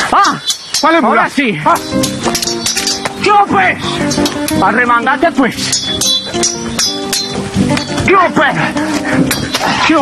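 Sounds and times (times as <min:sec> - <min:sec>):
machete blades clashing: 0:00.0 - 0:03.2, 0:04.0 - 0:04.6, 0:05.7 - 0:07.4.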